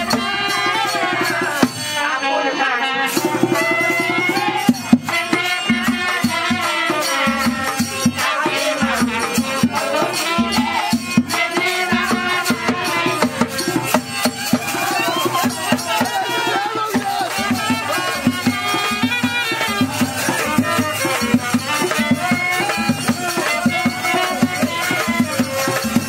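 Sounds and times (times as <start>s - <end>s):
hand drums steady beat: 0.0s - 2.0s, 3.1s - 26.0s
winding folk melody: 9.4s - 26.0s.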